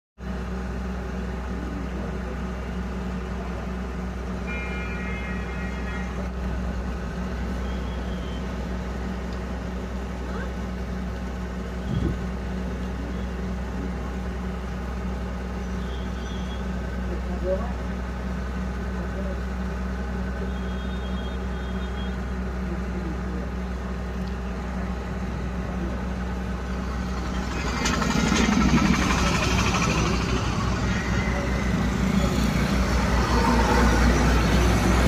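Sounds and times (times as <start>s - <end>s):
truck engine idling: 0.2s - 35.0s
brief high tone: 4.5s - 6.3s, 29.3s - 34.0s.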